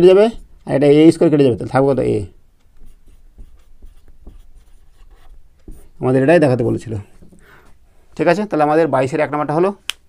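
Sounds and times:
marker pen writing on whiteboard: 0:00.0 - 0:07.4.

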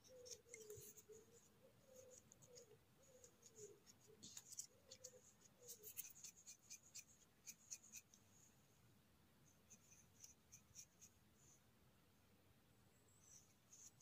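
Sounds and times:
knife scraping mushroom: 0:00.0 - 0:01.2.

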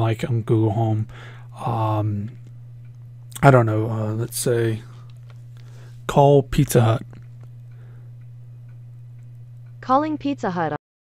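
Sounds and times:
person speaking: 0:00.0 - 0:02.4, 0:03.3 - 0:05.1, 0:06.0 - 0:07.2
steady low hum: 0:00.0 - 0:10.8.

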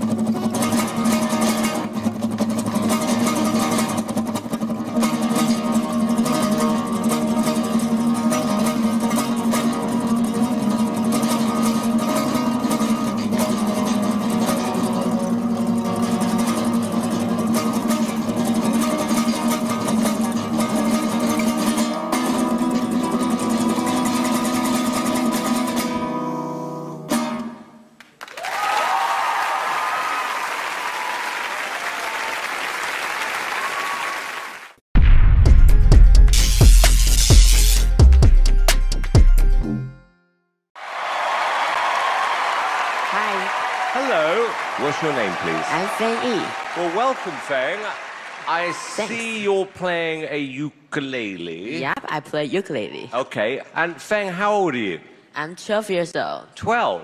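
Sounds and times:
acoustic guitar playing: 0:00.0 - 0:28.0, 0:35.6 - 0:40.4, 0:43.2 - 0:53.1
audience applauding and cheering: 0:28.0 - 0:34.8, 0:40.8 - 0:49.9.

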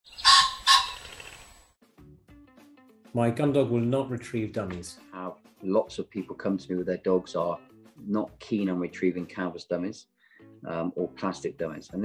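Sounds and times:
bird calling: 0:00.0 - 0:01.6.

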